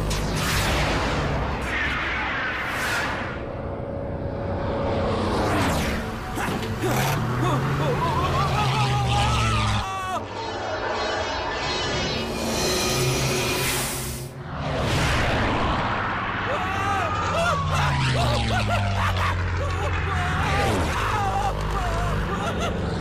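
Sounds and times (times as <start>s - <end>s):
biplane engine: 3.1s - 23.0s
action film music: 9.6s - 23.0s
rocket whoosh: 10.3s - 16.5s.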